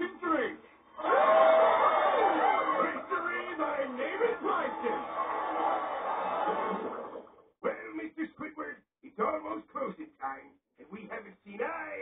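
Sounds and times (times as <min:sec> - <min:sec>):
cartoon crowd cheering: 0:01.0 - 0:07.4.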